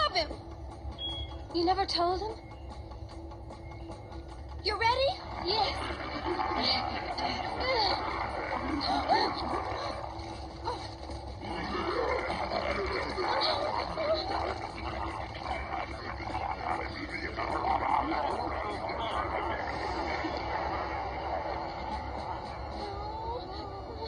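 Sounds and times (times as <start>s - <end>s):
cartoon creatures chattering and squealing: 4.7s - 24.0s.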